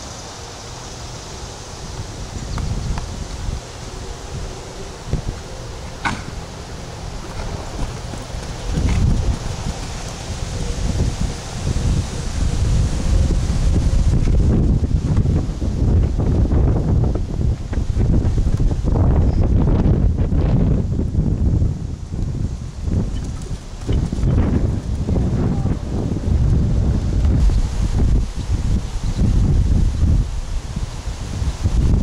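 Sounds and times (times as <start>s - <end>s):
wind buffeting microphone: 1.8s - 32.0s.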